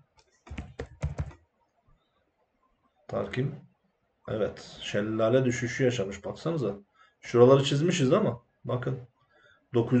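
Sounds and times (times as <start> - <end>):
computer keyboard typing: 0.1 - 1.4.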